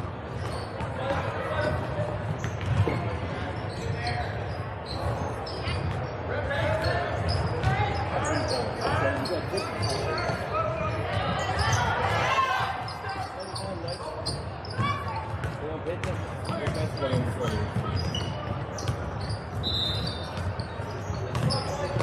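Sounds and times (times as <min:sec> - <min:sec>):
basketball bouncing on court: 0:00.2 - 0:06.1, 0:06.8 - 0:08.0, 0:14.3 - 0:22.0.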